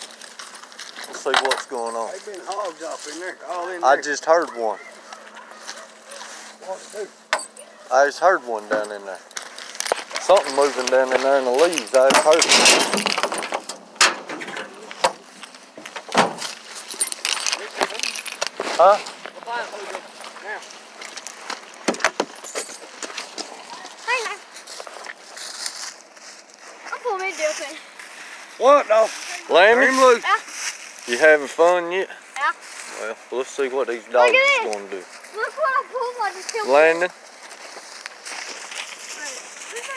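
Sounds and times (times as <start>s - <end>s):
footsteps crunching through dry leaves: 0.0s - 7.3s, 8.7s - 12.1s, 14.7s - 39.9s
faint rustling: 8.8s - 39.9s.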